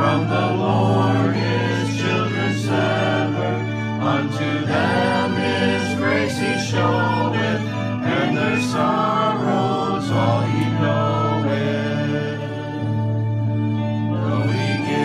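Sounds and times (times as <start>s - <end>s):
congregation singing: 0.0s - 15.0s
violin: 0.0s - 15.0s.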